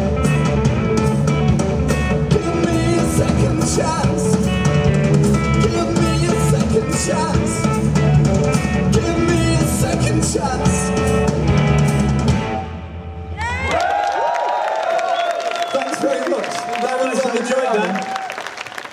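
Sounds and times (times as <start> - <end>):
live rock band playing: 0.0 - 13.4
man singing: 2.2 - 4.5, 5.5 - 7.9, 8.5 - 11.2
crowd cheering and whooping: 13.3 - 18.9.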